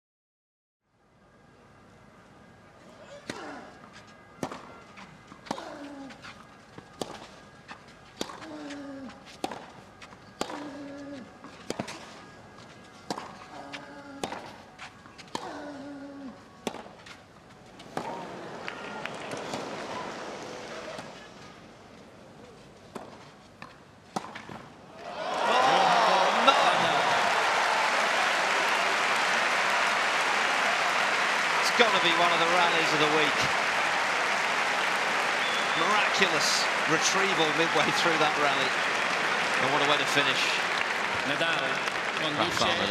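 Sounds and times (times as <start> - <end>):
racket striking tennis ball: 8.2 - 8.4, 16.7 - 16.9
crowd cheering and applause: 18.2 - 20.8, 25.0 - 42.9.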